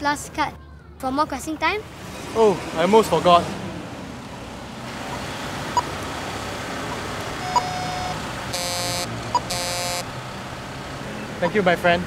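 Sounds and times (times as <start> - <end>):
card reader beeping: 6.9 - 10.1.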